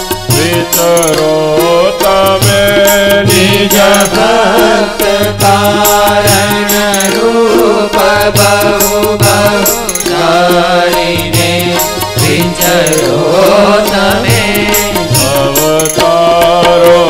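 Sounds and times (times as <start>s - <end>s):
devotional singing: 0.0s - 17.0s
held instrumental notes: 0.0s - 17.0s
steady rhythmic beat: 0.0s - 17.0s.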